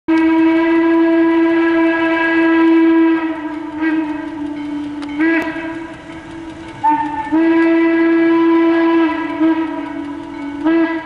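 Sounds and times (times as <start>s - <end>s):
steam locomotive whistle: 0.1s - 11.0s.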